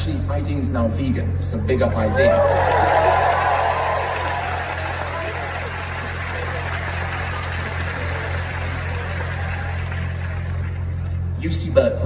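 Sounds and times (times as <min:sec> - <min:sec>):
low mechanical hum: 0:00.0 - 0:12.0.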